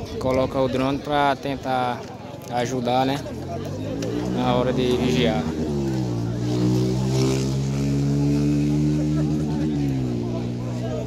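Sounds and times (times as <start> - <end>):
crowd voices murmuring: 0.0 - 11.0.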